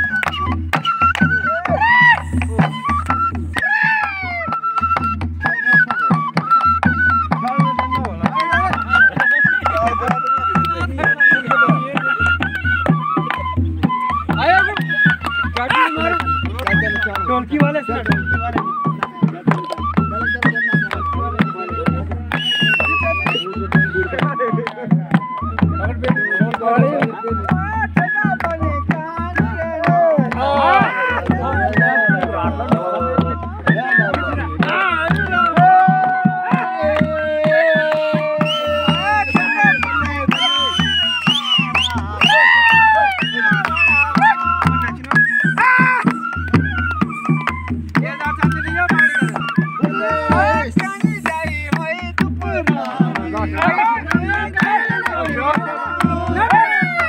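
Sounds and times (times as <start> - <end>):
wavering melody: 0.0 - 22.3
dholak drum beat: 0.0 - 57.0.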